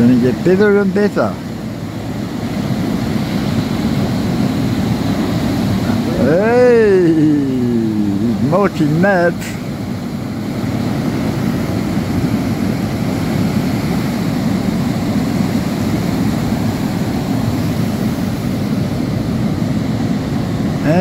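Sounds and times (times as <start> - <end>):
surf breaking on rocky shore: 0.0 - 21.0.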